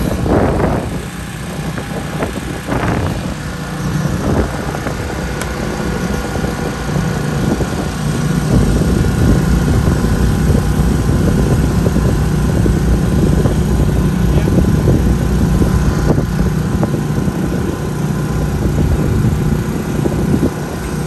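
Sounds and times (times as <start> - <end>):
excavator diesel engine running: 0.0 - 21.0.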